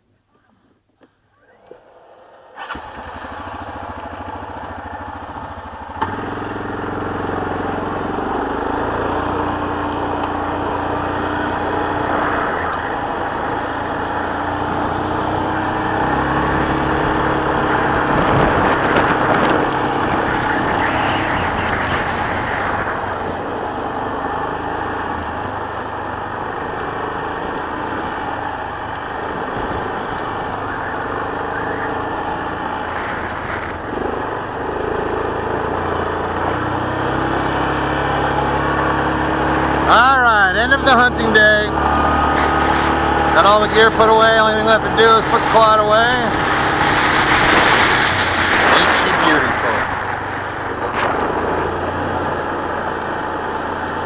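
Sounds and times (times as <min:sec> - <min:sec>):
tyres on gravel: 0:01.1 - 0:54.0
quad bike engine running: 0:01.4 - 0:54.0.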